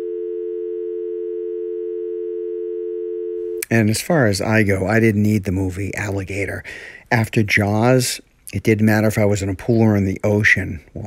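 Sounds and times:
telephone dial tone: 0.0 - 3.6.

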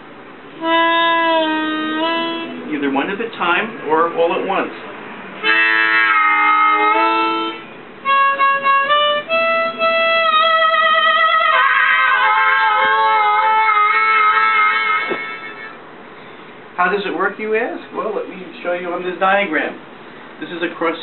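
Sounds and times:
harmonica chords and bent notes: 0.6 - 2.9, 5.4 - 15.8.

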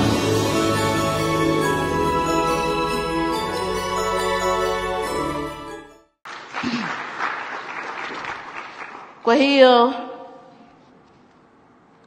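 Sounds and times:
audience applauding: 6.3 - 9.2.

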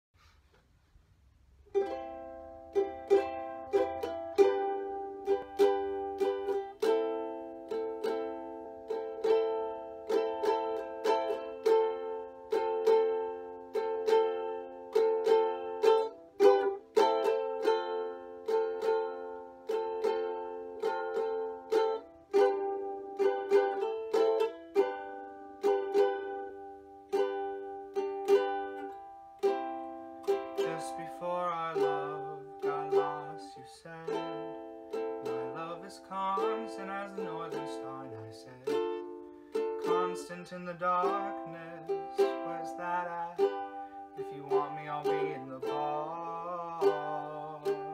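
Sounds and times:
ukulele strumming chords: 1.6 - 47.9
man singing: 30.3 - 47.9.

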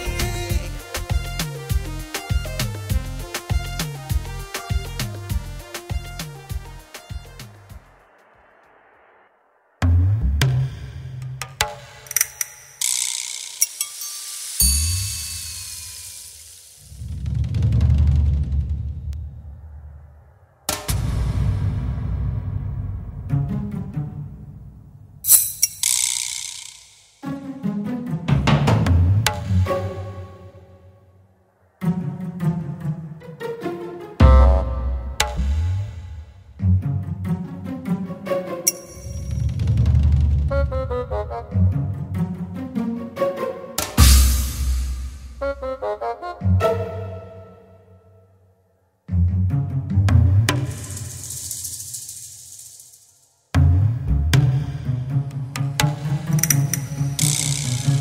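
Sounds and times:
rattle with a click: 12.0 - 17.0, 25.3 - 27.1, 50.6 - 53.2, 55.8 - 58.0
sudden high hiss: 12.0 - 17.1
high shimmering wash: 12.1 - 17.0, 25.3 - 27.2
drum hits: 43.9 - 45.5.

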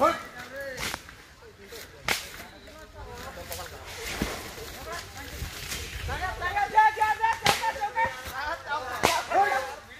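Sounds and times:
sharp crack: 2.0 - 2.5, 7.2 - 8.0, 8.9 - 9.4
distant shouting voices: 6.1 - 9.9.

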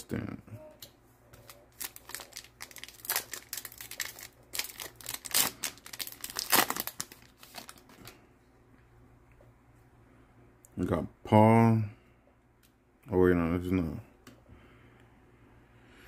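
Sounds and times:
wrapper tearing and crinkling: 1.4 - 8.1.

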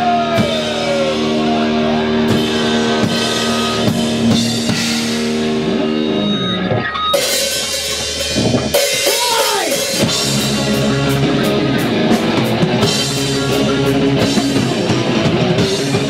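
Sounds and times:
swooping guitar pitch glide: 0.0 - 8.6, 9.9 - 16.0
rock band playing: 0.0 - 16.0.

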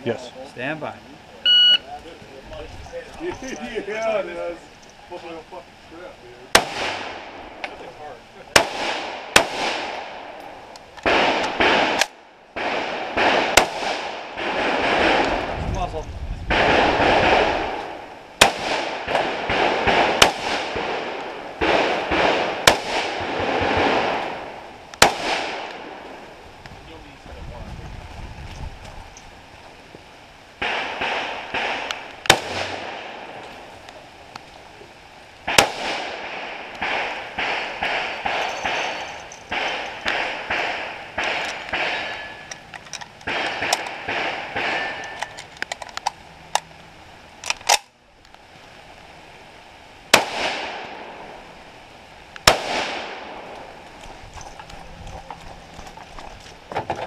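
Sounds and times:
rifle firing single shots: 6.5 - 7.8, 8.5 - 15.5, 16.5 - 26.2, 30.6 - 33.5, 35.4 - 45.8, 50.1 - 51.4, 52.4 - 53.8.

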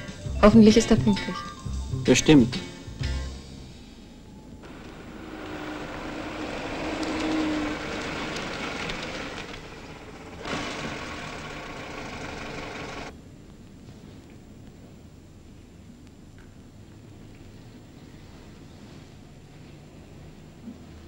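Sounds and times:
car engine and tyres passing: 4.2 - 13.1.

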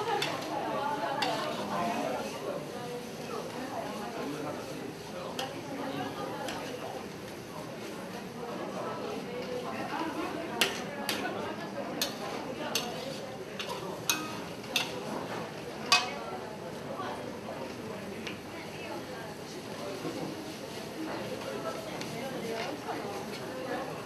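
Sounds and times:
metal spatula scraping a wok: 12.0 - 14.9
spatula clinking against wok: 12.0 - 15.0, 15.8 - 16.1.

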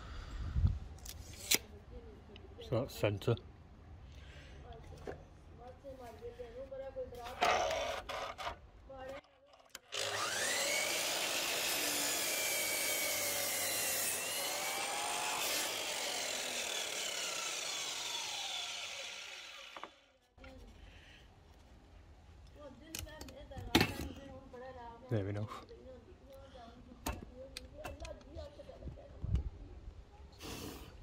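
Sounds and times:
mitre saw cutting wood: 9.8 - 20.1.

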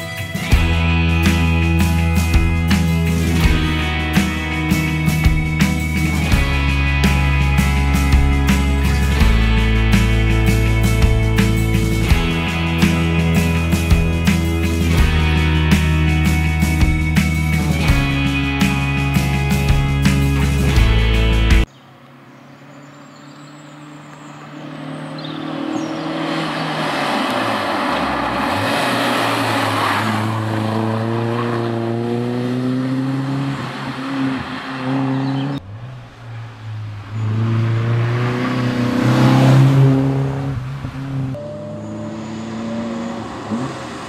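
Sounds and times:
rock music: 0.0 - 21.7
rally car engine revving hard: 24.2 - 35.9, 37.0 - 44.0.

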